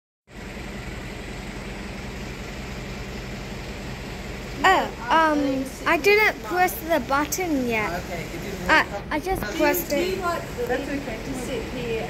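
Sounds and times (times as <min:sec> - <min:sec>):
machine hum and hiss: 0:00.3 - 0:12.0.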